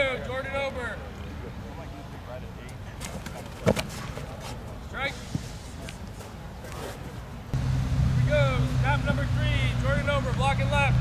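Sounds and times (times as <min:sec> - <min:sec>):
steady low rumble: 0:07.5 - 0:11.0.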